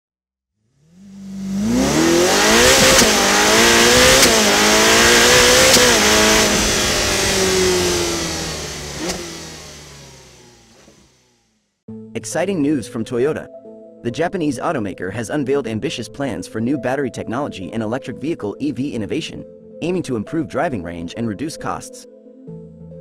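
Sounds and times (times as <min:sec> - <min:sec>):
car engine revving: 0:00.6 - 0:11.4.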